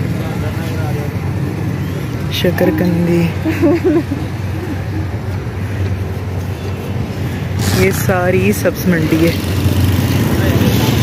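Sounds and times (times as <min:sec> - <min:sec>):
street traffic engine rumble: 0:00.0 - 0:11.0
woman's voice: 0:02.3 - 0:04.1, 0:07.6 - 0:09.4.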